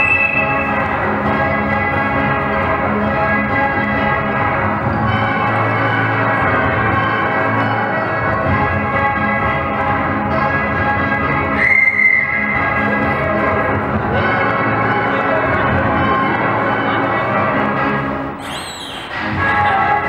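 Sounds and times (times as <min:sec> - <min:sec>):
loud whistle blast: 0:00.0 - 0:00.9, 0:11.6 - 0:12.6, 0:18.4 - 0:19.1
ragtime dance music: 0:00.0 - 0:20.0.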